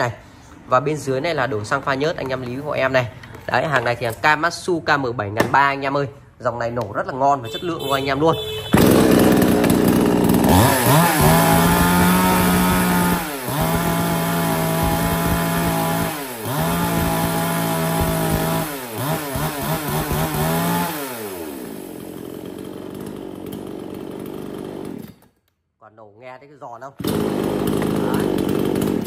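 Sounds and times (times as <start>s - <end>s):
chainsaw revving and idling: 8.7s - 25.3s, 27.0s - 29.0s.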